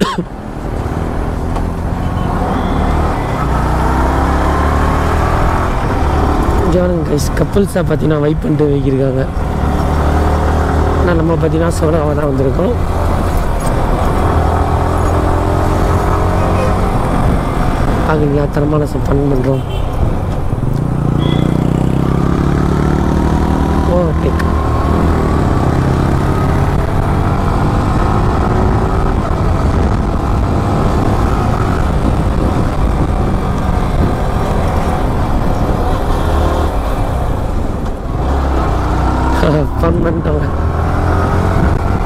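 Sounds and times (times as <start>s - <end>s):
wind rumble on microphone: 5.2s - 21.2s, 23.4s - 42.0s
motorcycle engine running: 20.4s - 26.0s.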